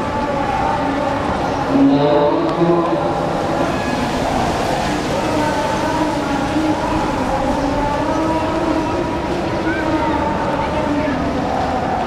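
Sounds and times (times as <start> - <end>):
crowd noise: 0.0 - 12.0
man chanting prayer over loudspeakers: 0.0 - 12.0.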